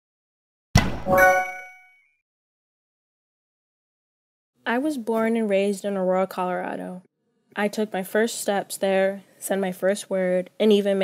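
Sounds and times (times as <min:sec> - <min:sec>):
sudden hit: 0:00.8 - 0:01.4
bright ringing chime: 0:01.1 - 0:02.1.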